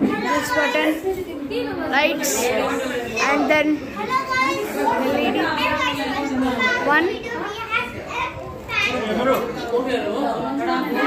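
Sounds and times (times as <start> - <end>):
children's voices: 0.0 - 11.0
people chattering: 0.0 - 11.0.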